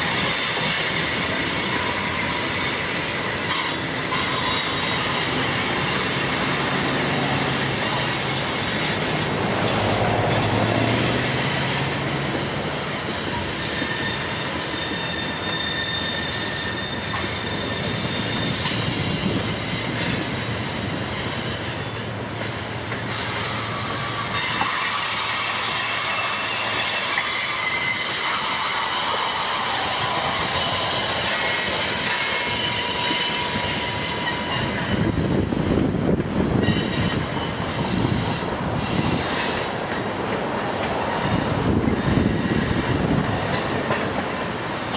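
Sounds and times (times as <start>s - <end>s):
freight train rumble: 0.0s - 44.9s
train wheels squealing: 0.0s - 44.9s.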